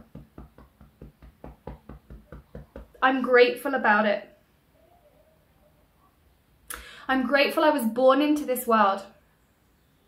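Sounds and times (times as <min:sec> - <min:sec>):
fingertips tapping on body: 0:00.0 - 0:03.0.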